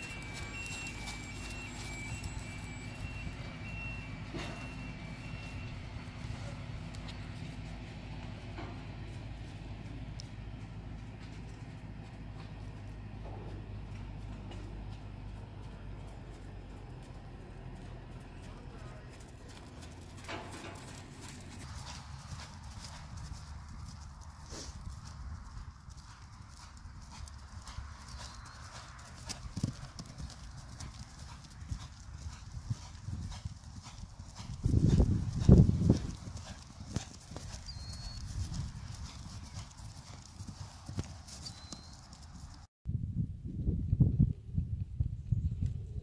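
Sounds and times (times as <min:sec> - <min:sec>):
horse hoofbeats: 0:00.0 - 0:42.7.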